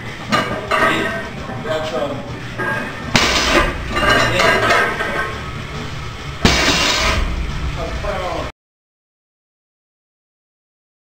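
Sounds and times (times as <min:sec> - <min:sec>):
weight plates clattering: 0:02.5 - 0:05.7
weight plates crashing down: 0:02.6 - 0:05.6, 0:06.4 - 0:08.0.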